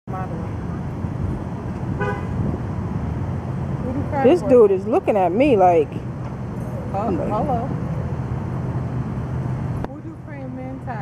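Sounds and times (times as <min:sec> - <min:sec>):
traffic rumble: 0:00.0 - 0:11.0
car horn toots: 0:02.0 - 0:02.4.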